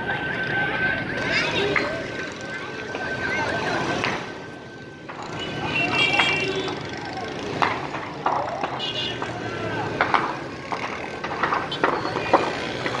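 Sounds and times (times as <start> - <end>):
people talking and calling out: 0.0 - 13.0
street background: 0.0 - 13.0.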